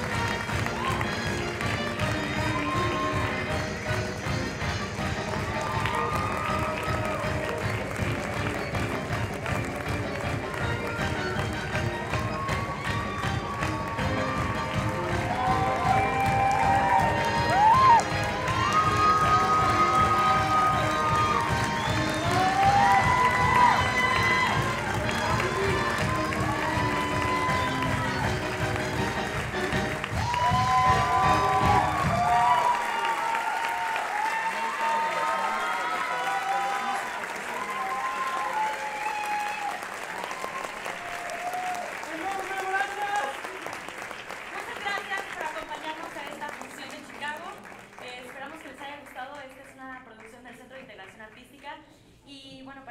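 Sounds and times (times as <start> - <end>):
band music with heavy beat: 0.0 - 32.4
audience applauding and cheering: 0.0 - 49.6.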